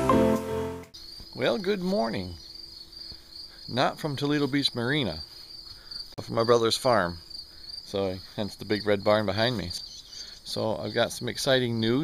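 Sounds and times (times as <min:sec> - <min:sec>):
crickets chirring: 0:00.9 - 0:12.0.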